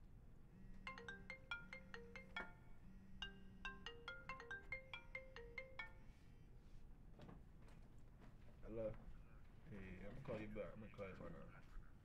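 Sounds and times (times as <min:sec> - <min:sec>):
marimba-like phone ringtone: 0:00.8 - 0:06.2.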